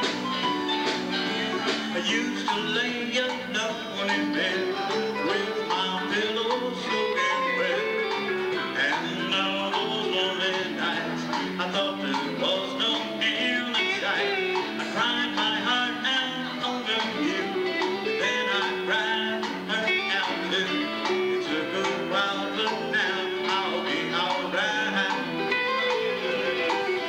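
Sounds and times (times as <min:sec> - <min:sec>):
bending guitar lead: 0:00.0 - 0:27.0
country band playing: 0:00.0 - 0:27.0.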